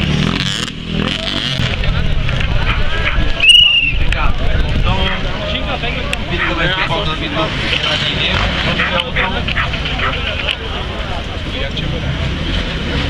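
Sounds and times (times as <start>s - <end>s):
motorcycles riding off: 0.0s - 13.0s
voices: 0.9s - 13.0s.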